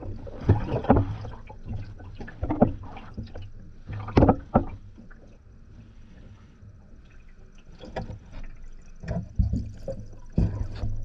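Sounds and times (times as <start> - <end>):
muffled knocks of feet in water: 0.0 - 11.0
water sloshing: 0.0 - 11.0.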